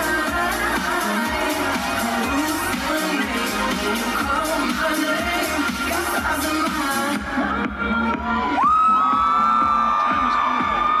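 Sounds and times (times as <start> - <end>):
dance music over speakers: 0.0 - 11.0
crowd cheering: 0.6 - 3.2, 7.9 - 11.0
high whoop: 8.2 - 11.0.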